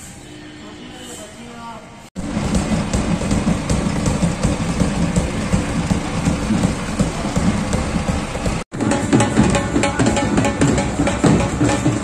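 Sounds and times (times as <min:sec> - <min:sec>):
tractor diesel engine running: 0:02.2 - 0:12.0.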